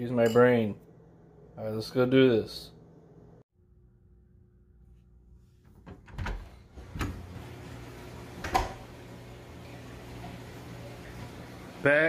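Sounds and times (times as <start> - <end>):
door opening: 5.8 - 7.7, 8.3 - 8.9
aquarium pumps humming: 6.4 - 12.0.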